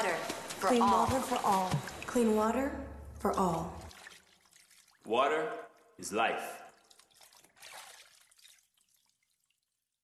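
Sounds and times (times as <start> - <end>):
water dripping and trickling: 0.0 - 10.0.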